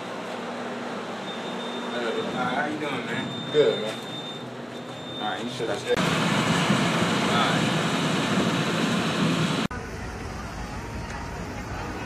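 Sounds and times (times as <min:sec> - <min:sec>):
street noise: 0:00.0 - 0:12.0.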